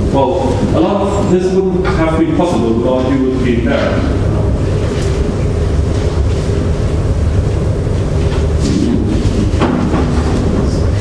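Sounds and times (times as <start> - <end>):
room noise rumble: 0.0 - 11.0.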